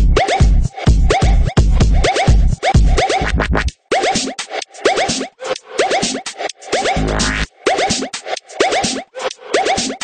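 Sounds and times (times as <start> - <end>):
electronic dance music: 0.0 - 10.0
heavy bass beat: 0.0 - 10.0
turntable scratching: 0.1 - 10.0.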